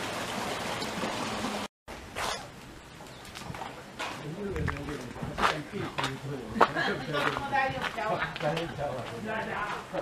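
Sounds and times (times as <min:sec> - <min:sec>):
people talking: 0:04.2 - 0:10.0.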